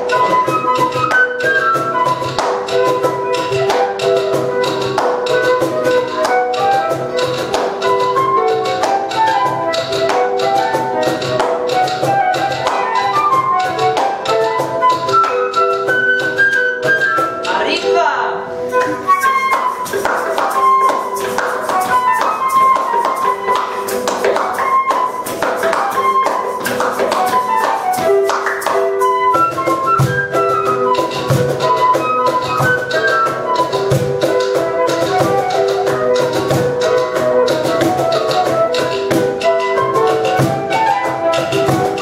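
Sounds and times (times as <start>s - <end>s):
low cajon beats: 0.0s - 18.0s, 18.6s - 42.0s
shaker ticking: 18.7s - 42.0s.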